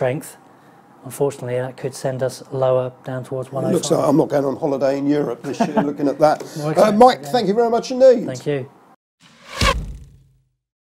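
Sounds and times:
whoosh into deep hit: 0:09.2 - 0:10.4.

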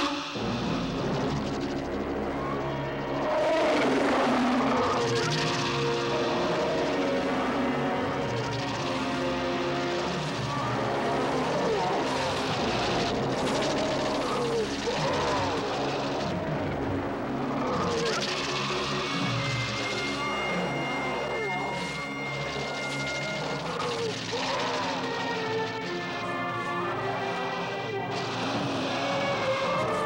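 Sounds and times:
giant ape roar: 0:02.4 - 0:30.0.

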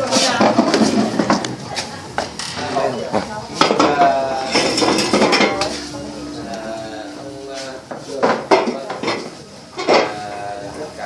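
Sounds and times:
people talking: 0:01.6 - 0:09.5
dishes and cups clinking: 0:02.6 - 0:10.2.

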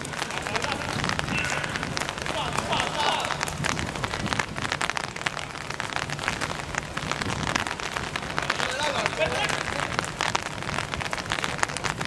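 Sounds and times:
footsteps splashing on wet court: 0:00.0 - 0:07.0.

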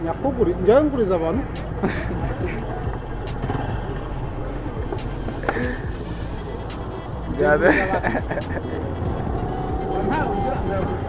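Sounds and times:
faint voices: 0:00.0 - 0:11.0
outdoor hubbub: 0:00.0 - 0:11.0
vehicle engine running: 0:00.0 - 0:11.0.

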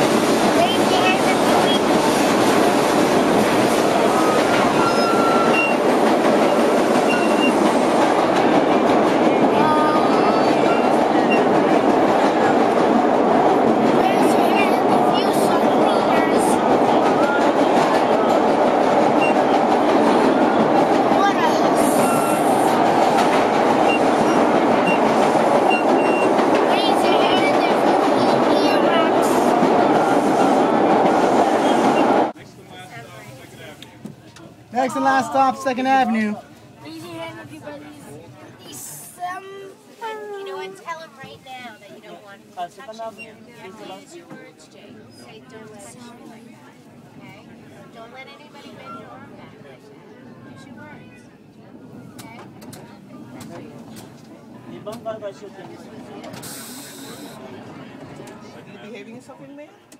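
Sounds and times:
subway train running in tunnel: 0:00.0 - 0:39.2, 0:40.8 - 0:59.9.

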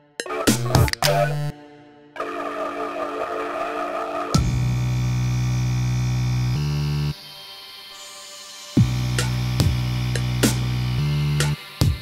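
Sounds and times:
low synthesizer bass note: 0:04.4 - 0:07.2.

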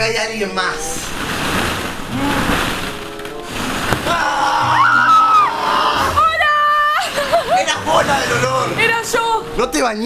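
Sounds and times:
plastic balls rustling and clattering: 0:00.6 - 0:04.6.

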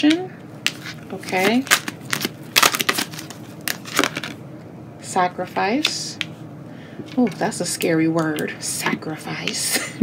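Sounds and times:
cards snapping and rustling: 0:00.7 - 0:04.4.

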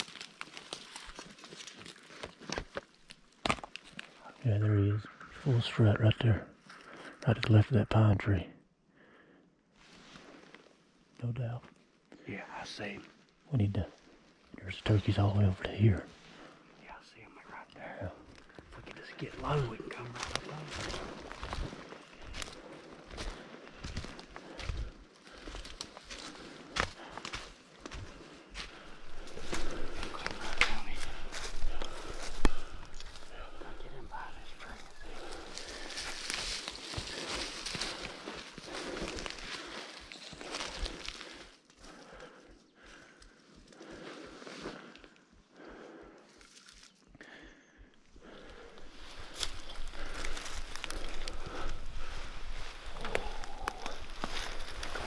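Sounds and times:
crunching through dry leaves: 0:00.0 - 0:03.2, 0:19.4 - 0:41.6, 0:48.8 - 0:55.0.

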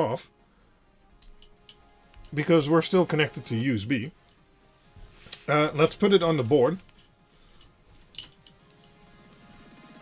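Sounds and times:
faint clicks and taps: 0:00.9 - 0:02.4, 0:06.8 - 0:09.0.

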